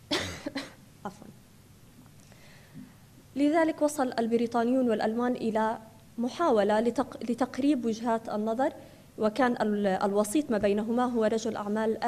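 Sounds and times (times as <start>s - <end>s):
woman coughing: 0.0s - 0.8s.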